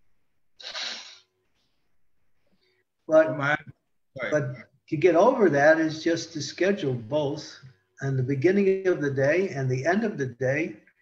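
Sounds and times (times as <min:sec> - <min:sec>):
person's sharp breath burst: 0:00.6 - 0:01.2.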